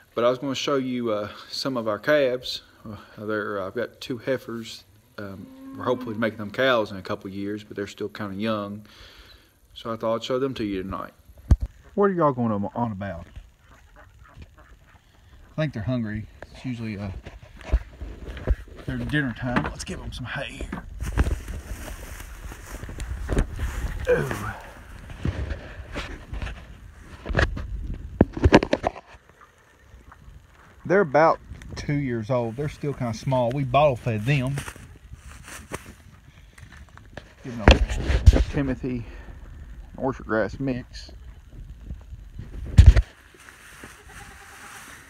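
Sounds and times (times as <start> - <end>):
quiet hiss: 0.0 - 45.0
hay rustling: 21.0 - 25.2, 34.0 - 36.2, 43.1 - 45.0.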